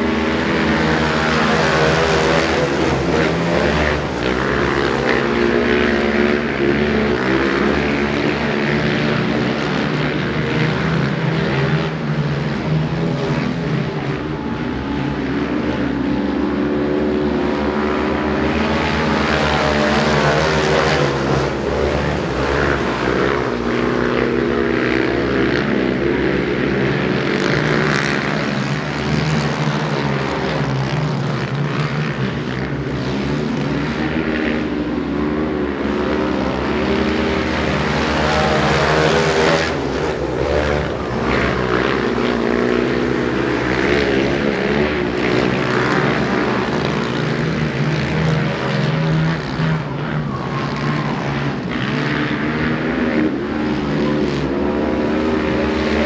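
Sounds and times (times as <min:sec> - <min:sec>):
quad engines revving: 0:00.0 - 0:56.0.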